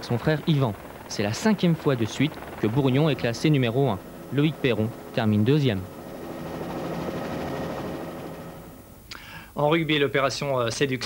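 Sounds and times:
faint engine-like hum: 0.0s - 9.6s.

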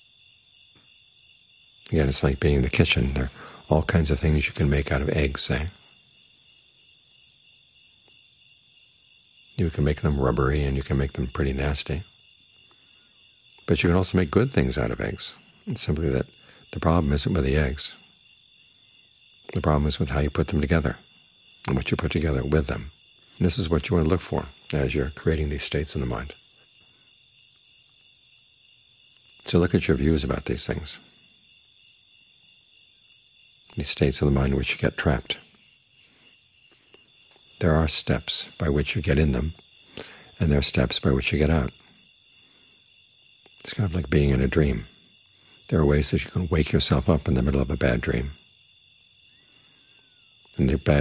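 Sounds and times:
crickets chirping: 0.0s - 51.0s.

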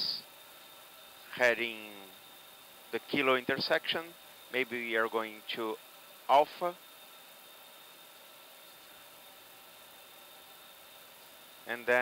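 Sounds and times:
thin high whine: 0.0s - 12.0s
ventilation hiss: 0.0s - 12.0s.

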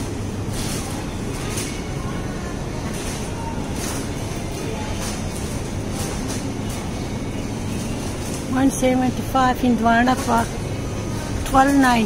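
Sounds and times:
faint store music: 0.0s - 12.0s
refrigerated cases hum: 0.0s - 12.0s.

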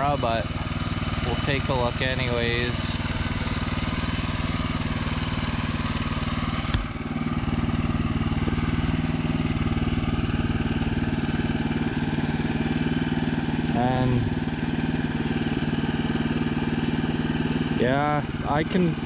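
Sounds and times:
sawmill gas engine running: 0.0s - 19.0s.

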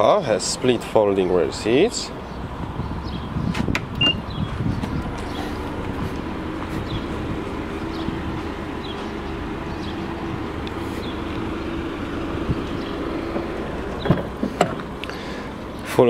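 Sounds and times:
outdoor background hum: 0.2s - 16.0s
car door opening clicks: 13.9s - 15.0s.

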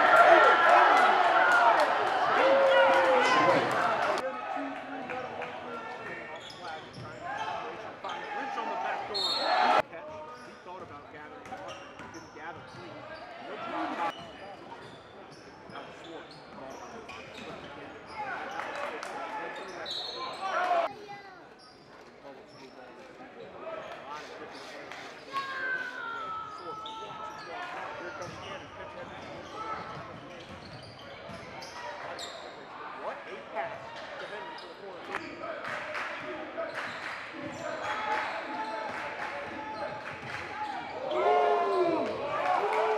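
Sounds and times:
voices echoing in gym: 0.0s - 42.9s
shoes squeaking on court: 28.2s - 32.6s.

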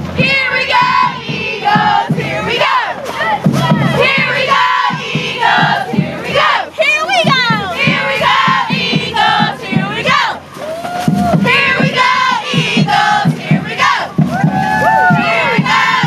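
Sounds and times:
cheerleaders shouting and cheering: 0.0s - 16.0s.

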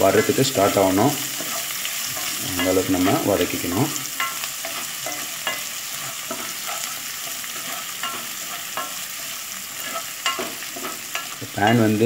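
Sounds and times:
onions sizzling in hot oil: 0.0s - 12.0s
spatula tapping and scraping pan: 0.0s - 12.0s.

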